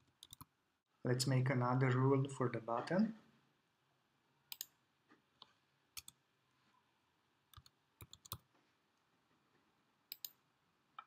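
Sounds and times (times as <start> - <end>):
computer mouse clicks: 0.0 - 0.5, 4.5 - 4.8, 5.4 - 6.2, 7.5 - 8.5, 10.1 - 10.4.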